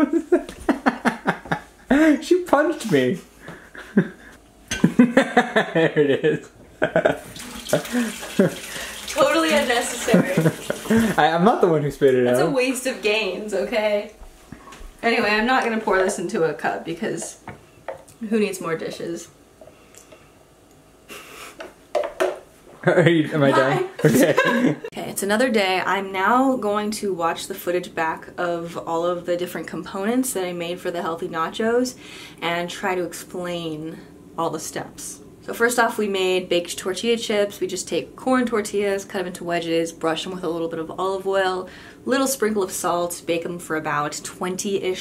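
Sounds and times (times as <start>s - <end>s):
woman laughing in bursts: 0.0s - 2.2s, 3.8s - 8.9s, 9.9s - 11.2s, 23.5s - 24.9s.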